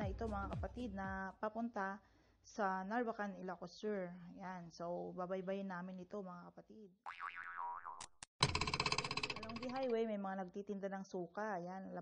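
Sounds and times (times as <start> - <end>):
springy wobbling boing tone: 7.1 - 8.6.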